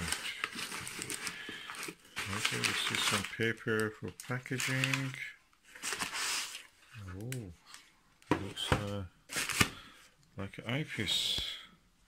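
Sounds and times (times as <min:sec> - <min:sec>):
packing paper crinkling: 0:00.0 - 0:07.9, 0:08.5 - 0:10.0.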